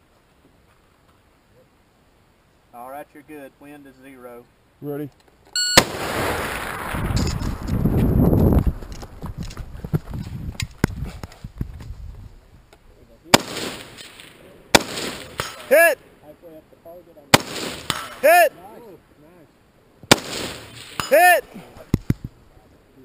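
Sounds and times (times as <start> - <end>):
electronic timer beep: 5.6 - 5.8
rifle shots: 5.7 - 7.6, 13.3 - 15.8, 17.3 - 18.2, 20.1 - 21.2.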